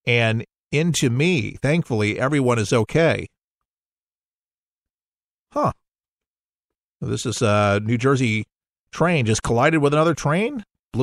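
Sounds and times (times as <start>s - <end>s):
man saying huh: 5.5s - 5.8s.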